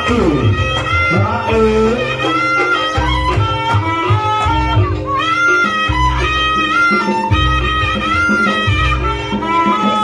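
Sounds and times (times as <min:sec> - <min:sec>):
high melodic instrument tune: 0:00.0 - 0:10.0.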